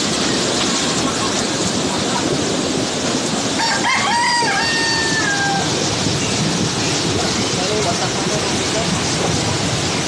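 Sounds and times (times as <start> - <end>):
river rushing: 0.0 - 10.0
rooster crowing: 3.6 - 5.9.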